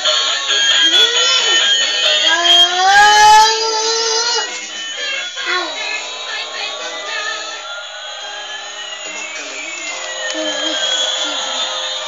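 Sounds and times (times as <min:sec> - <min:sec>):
toy airplane jet-engine sound: 0:00.0 - 0:12.0.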